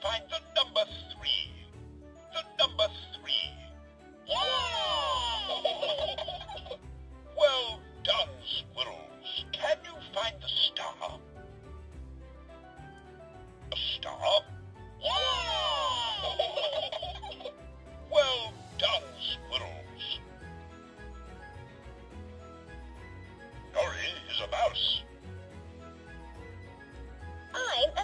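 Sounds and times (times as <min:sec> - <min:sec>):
toy speaker giggle: 0:04.3 - 0:06.8, 0:15.0 - 0:17.5, 0:23.8 - 0:25.0.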